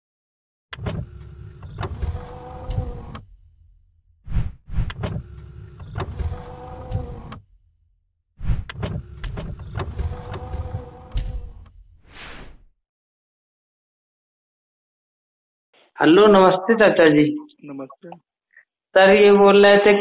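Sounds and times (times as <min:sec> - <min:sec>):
mechanical clicks and knocks: 0:00.7 - 0:03.4, 0:04.8 - 0:07.5, 0:08.6 - 0:11.8
motor-like whir: 0:00.7 - 0:03.5, 0:04.3 - 0:07.6, 0:08.4 - 0:12.6.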